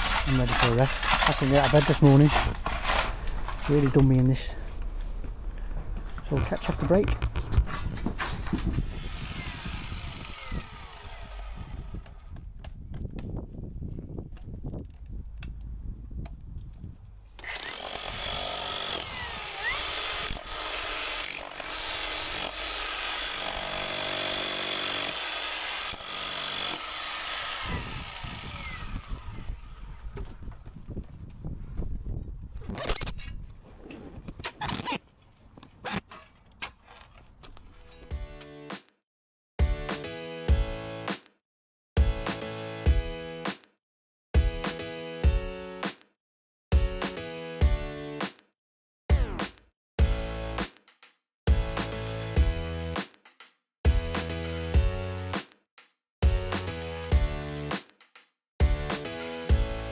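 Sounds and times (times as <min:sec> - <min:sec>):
spade digging soil and rubble: 0:00.0 - 0:04.5, 0:33.0 - 0:38.2.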